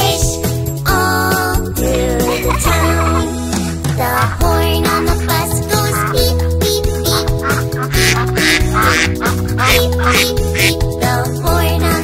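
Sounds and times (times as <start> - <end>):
children's sing-along song: 0.0 - 12.0
cartoon duck quacks: 4.0 - 6.5, 7.1 - 10.8.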